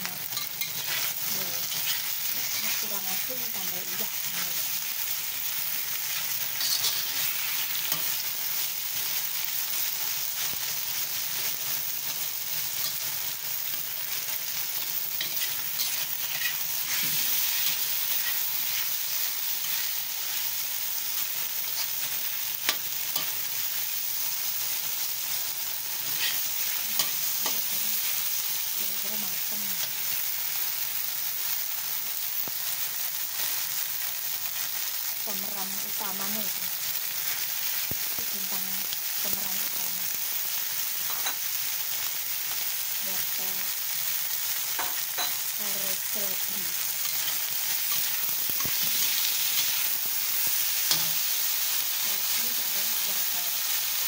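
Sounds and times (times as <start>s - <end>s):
food sizzling in oil: 0.0s - 54.0s
metal spatula scraping wok: 0.2s - 2.9s, 6.0s - 8.2s, 15.1s - 20.4s, 26.0s - 27.7s, 47.0s - 49.9s.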